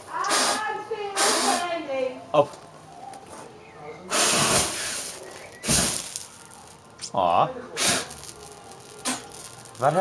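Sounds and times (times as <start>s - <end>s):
fire breathing hiss: 0.2s - 1.8s, 4.0s - 6.7s, 7.7s - 10.0s
flame burst: 4.1s - 7.1s, 7.7s - 10.0s.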